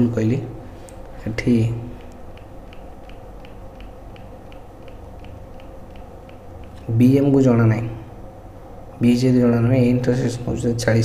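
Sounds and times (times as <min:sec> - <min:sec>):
low background hum: 0:00.0 - 0:11.0
faint light ticking: 0:00.8 - 0:07.1.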